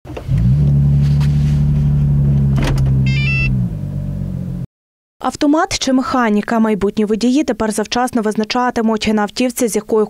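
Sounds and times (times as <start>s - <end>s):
car engine humming: 0.1s - 4.7s
short electronic chime: 3.1s - 3.6s.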